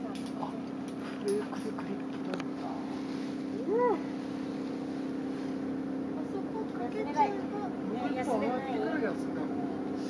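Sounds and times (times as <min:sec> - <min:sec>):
low motor drone: 0:00.0 - 0:10.0.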